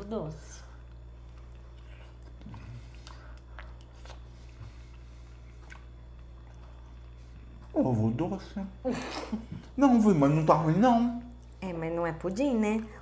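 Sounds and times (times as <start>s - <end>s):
steady low hum: 0.0s - 13.0s
person chewing: 0.9s - 7.8s.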